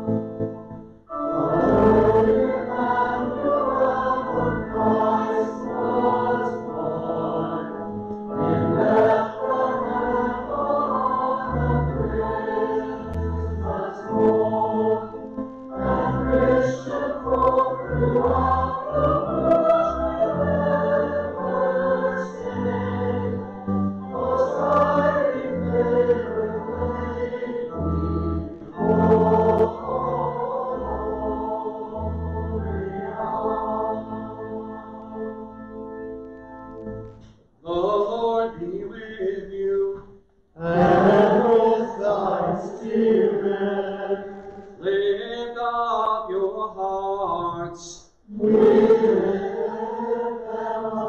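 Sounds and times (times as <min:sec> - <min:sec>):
voices singing a hymn: 0:01.1 - 0:36.3, 0:37.6 - 0:40.0, 0:40.6 - 0:51.0.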